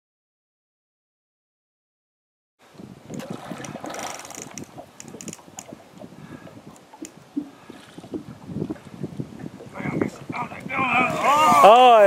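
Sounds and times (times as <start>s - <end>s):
wind on microphone: 2.6s - 12.0s
river water sloshing and splashing: 2.7s - 10.3s
light clicks and knocks: 3.1s - 5.8s.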